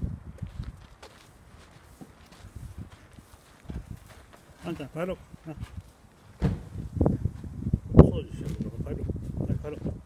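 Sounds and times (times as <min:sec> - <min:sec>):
footsteps on gravel: 0:00.3 - 0:07.6, 0:08.4 - 0:10.0
person speaking: 0:04.5 - 0:05.8.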